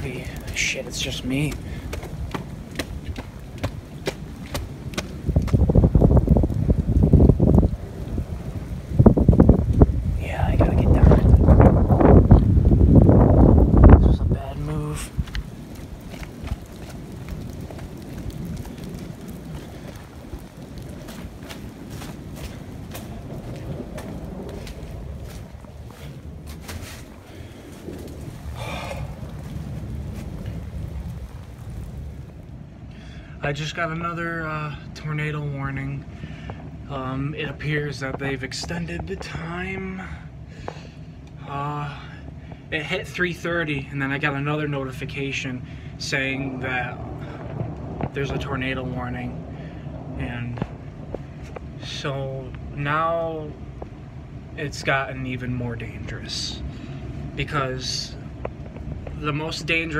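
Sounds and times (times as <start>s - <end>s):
rain hiss: 0.0s - 59.9s
wind gusting on microphone: 0.0s - 59.9s.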